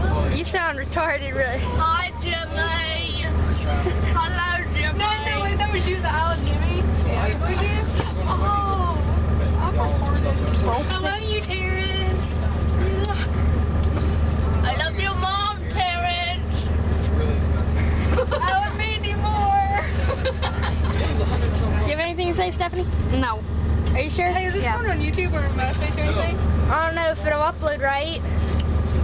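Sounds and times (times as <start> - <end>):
bus engine and road noise: 0.0 - 29.0
passengers' voices: 0.0 - 29.0.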